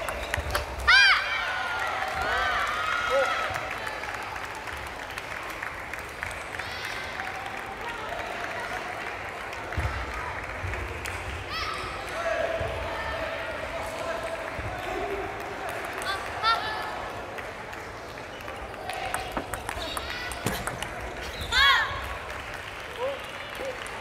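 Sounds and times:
shoe soles squeaking on floor: 19.3 - 21.8.

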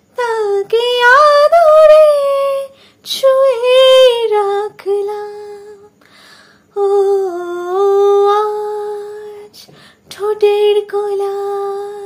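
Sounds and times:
woman singing unaccompanied: 0.1 - 6.1, 6.7 - 12.0.

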